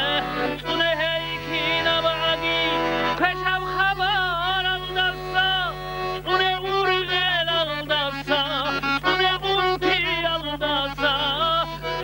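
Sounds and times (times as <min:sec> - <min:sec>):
man singing unaccompanied: 0:00.0 - 0:12.0
steady low hum: 0:00.0 - 0:12.0.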